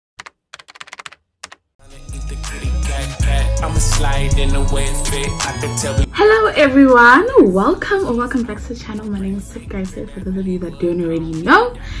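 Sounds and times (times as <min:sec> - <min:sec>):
computer keyboard typing: 0:00.2 - 0:01.6
music: 0:01.8 - 0:12.0.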